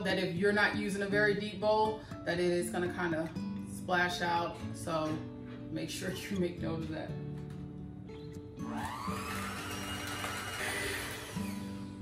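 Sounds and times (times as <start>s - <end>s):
electric hand mixer whirring: 8.7s - 12.0s.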